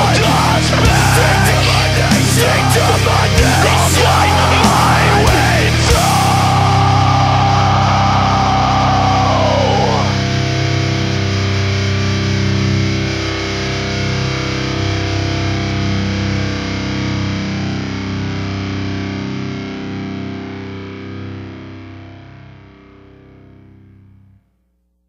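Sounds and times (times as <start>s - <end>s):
distorted electric guitar chord ringing: 0.0s - 24.2s.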